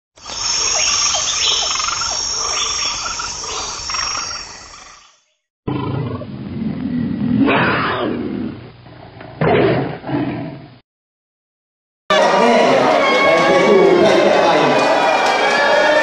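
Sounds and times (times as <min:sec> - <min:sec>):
tiger roaring: 0:05.7 - 0:10.7.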